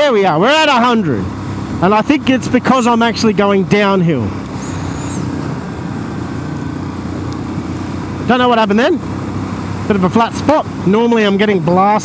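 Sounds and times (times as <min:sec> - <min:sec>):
motorcycle engine at full throttle: 0:00.0 - 0:12.0
road noise: 0:00.0 - 0:12.0.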